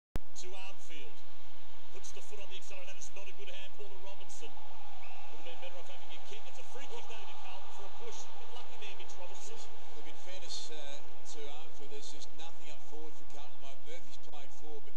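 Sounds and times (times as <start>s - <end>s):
stadium crowd noise: 0.2s - 14.9s
commentator talking: 0.3s - 1.2s, 2.0s - 4.7s, 5.3s - 14.9s.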